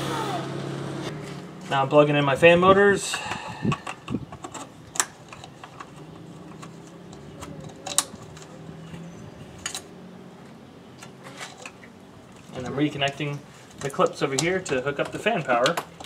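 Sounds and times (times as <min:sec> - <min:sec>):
plastic connectors clicking: 0:03.7 - 0:08.6.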